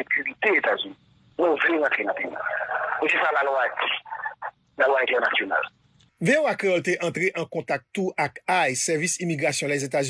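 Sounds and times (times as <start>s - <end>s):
person speaking over telephone: 0.0s - 5.7s.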